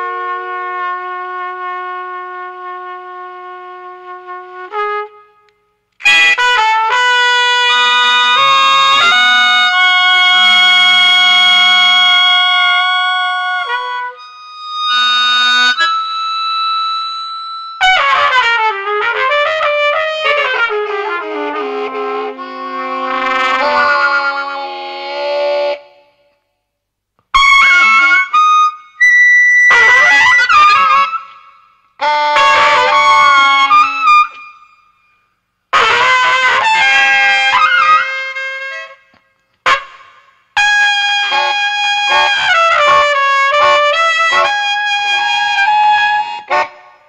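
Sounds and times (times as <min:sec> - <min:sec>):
trumpet duo playing: 0:00.0 - 0:26.2, 0:27.3 - 0:34.6, 0:35.7 - 0:47.0.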